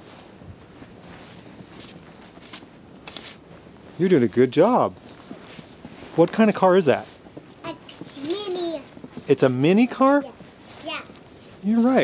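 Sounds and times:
hand wiping snow off car: 0:00.0 - 0:04.5, 0:05.1 - 0:12.0
footsteps crunching snow: 0:00.0 - 0:12.0.

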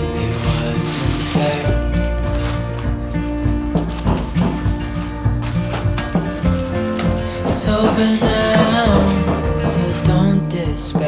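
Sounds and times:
song with held tones and bass: 0:00.0 - 0:11.0.

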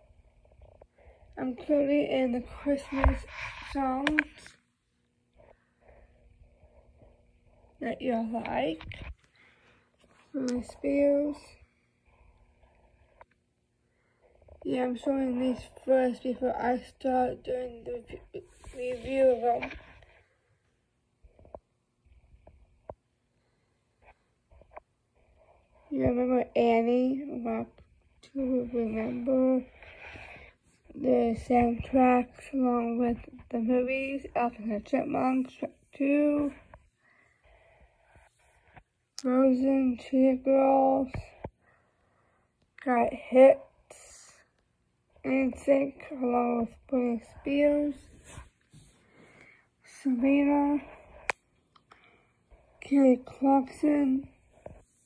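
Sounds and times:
person speaking: 0:01.4 - 0:04.6, 0:07.8 - 0:09.1, 0:10.2 - 0:11.6, 0:14.6 - 0:19.9, 0:25.8 - 0:36.7, 0:45.2 - 0:48.5
faint breath: 0:09.2 - 0:10.0, 0:36.9 - 0:38.8, 0:41.6 - 0:42.6, 0:48.3 - 0:49.8.

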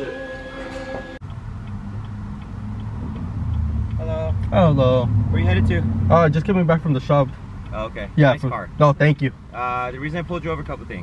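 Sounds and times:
car engine idling: 0:00.0 - 0:11.0
turn signal ticking: 0:01.1 - 0:11.0.

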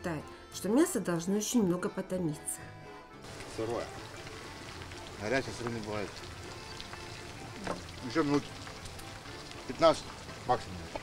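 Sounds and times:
faint background music: 0:00.0 - 0:11.0
meat sizzling: 0:03.2 - 0:11.0.

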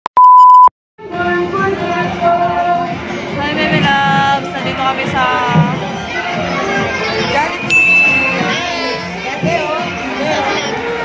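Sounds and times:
electronic beep: 0:00.1 - 0:00.7, 0:07.7 - 0:08.4.

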